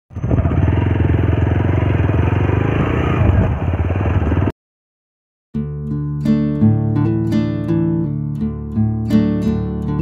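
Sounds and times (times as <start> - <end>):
motorcycle engine running: 0.1 - 4.5.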